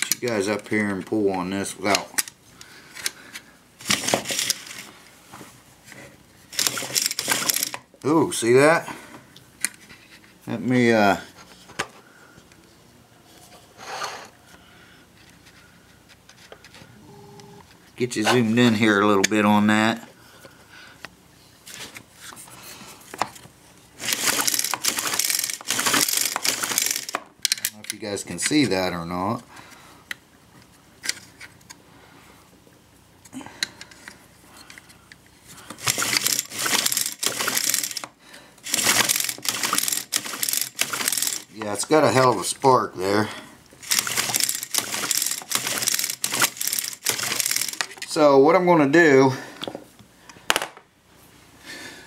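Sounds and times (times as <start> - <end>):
recoil starter rasping pull: 6.6 - 7.8, 24.0 - 27.9, 35.8 - 41.6, 43.8 - 48.0.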